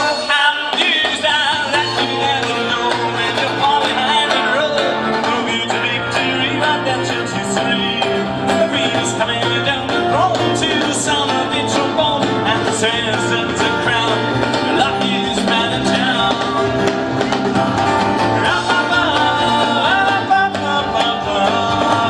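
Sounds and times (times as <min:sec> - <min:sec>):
live band playing instrumental: 0:00.0 - 0:22.0.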